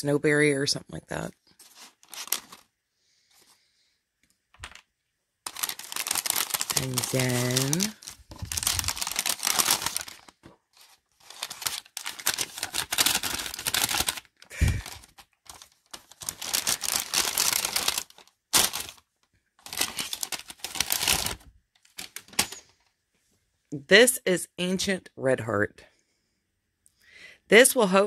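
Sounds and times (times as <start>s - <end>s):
paper bag crinkling: 1.6s - 2.7s, 5.5s - 22.7s.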